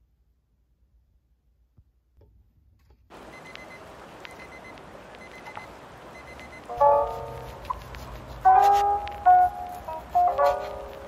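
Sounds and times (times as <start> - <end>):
faint room noise hiss: 0.0 - 11.0
light ticks: 3.4 - 10.4.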